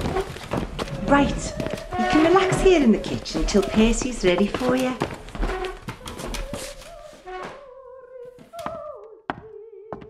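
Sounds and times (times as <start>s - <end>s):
operatic singing voice: 0.9s - 5.0s, 5.9s - 10.0s.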